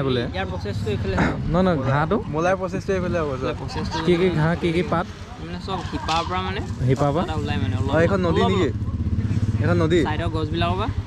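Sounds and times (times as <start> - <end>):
engine throbbing: 2.8 - 11.0.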